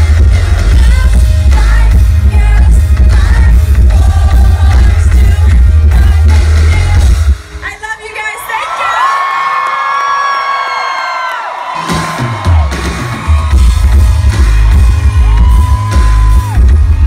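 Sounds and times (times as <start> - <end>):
live pop music through speakers: 0.0 - 17.0
audience screaming: 8.0 - 17.0
heavy pulsing bass beat: 12.1 - 17.0.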